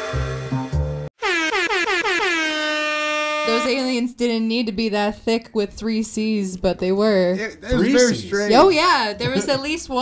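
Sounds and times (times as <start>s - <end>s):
air horn blasts: 1.2s - 4.0s.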